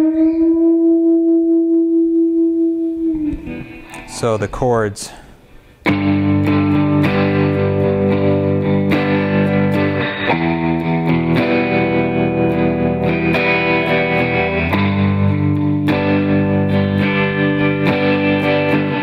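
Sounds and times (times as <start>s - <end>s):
electric guitar chords: 0.0s - 19.0s.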